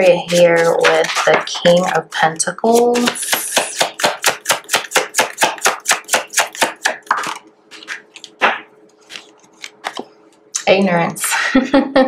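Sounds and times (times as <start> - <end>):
cards being shuffled: 6.4 - 10.4.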